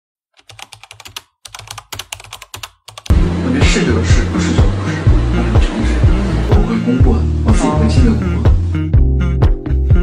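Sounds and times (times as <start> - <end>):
computer keyboard typing: 0.4 - 3.1
music with steady beat: 3.1 - 10.0.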